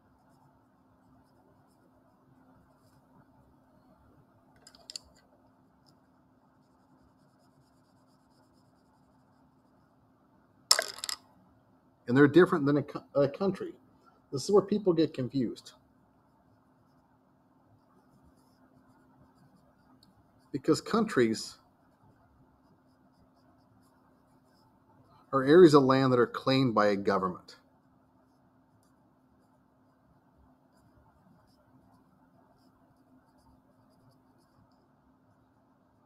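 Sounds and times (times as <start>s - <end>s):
colored pencil scratching on paper: 0.0s - 3.3s, 6.0s - 10.0s, 16.2s - 17.2s, 17.8s - 25.8s, 28.2s - 35.0s
faint steady hum: 0.0s - 36.0s.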